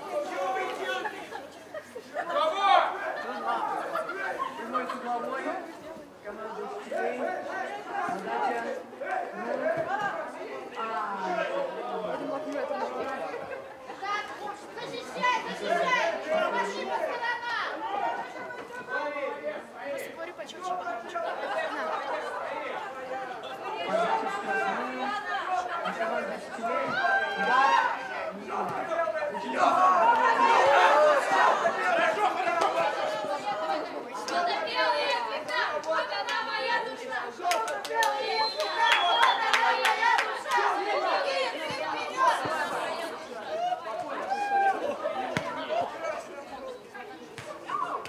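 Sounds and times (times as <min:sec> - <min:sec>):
many voices talking and calling out: 0:00.0 - 0:48.0.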